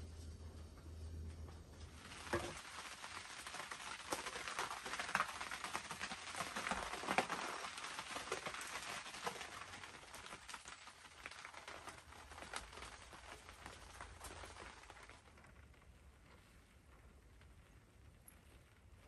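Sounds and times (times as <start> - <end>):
rain pattering on tent fabric: 0.3 - 19.0.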